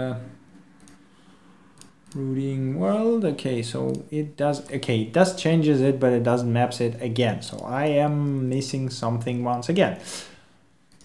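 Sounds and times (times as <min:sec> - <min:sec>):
computer mouse clicks: 0:00.5 - 0:01.0, 0:01.8 - 0:02.2, 0:03.8 - 0:04.8.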